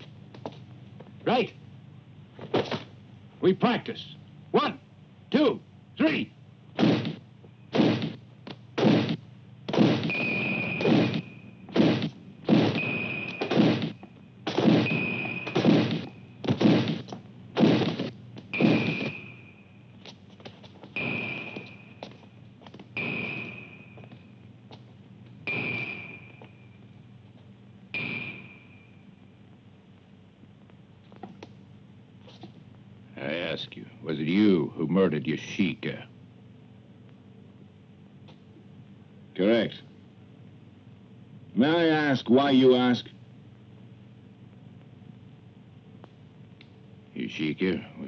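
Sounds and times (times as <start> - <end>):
sharp strikes with high ring: 9.8 - 13.9, 14.6 - 16.1, 18.6 - 19.6, 21.0 - 22.0, 23.0 - 24.0, 25.5 - 26.4, 28.0 - 29.0.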